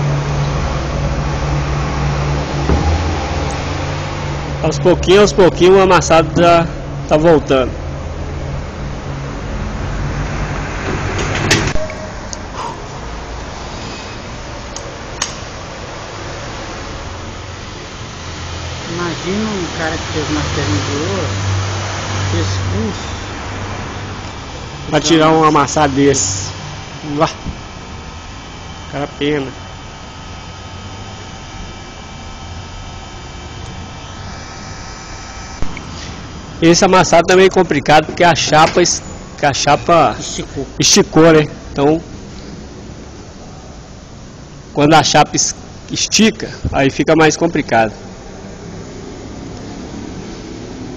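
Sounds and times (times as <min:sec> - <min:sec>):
heat gun fan whirring: 0:00.0 - 0:13.6, 0:14.3 - 0:50.9
low mechanical hum: 0:00.0 - 0:50.9
sharp click: 0:14.7 - 0:15.5.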